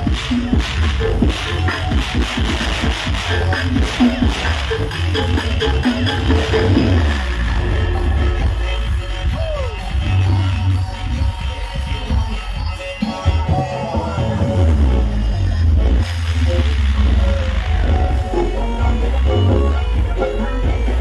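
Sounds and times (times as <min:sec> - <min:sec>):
loud dance music with heavy bass: 0:00.0 - 0:21.0.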